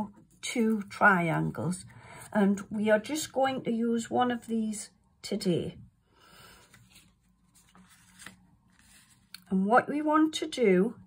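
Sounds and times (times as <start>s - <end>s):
paper and card rustling: 6.4s - 9.5s.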